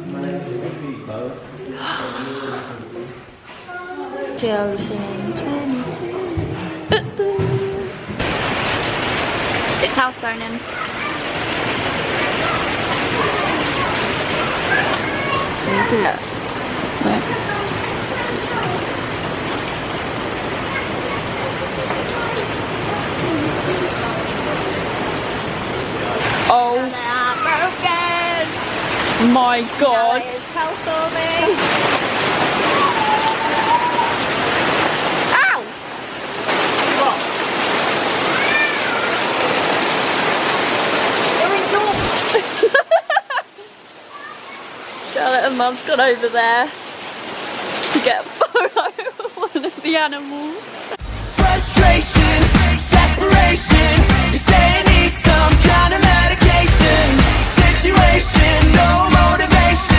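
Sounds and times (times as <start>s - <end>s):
heavy rain and hail on pavement: 6.4s - 59.9s.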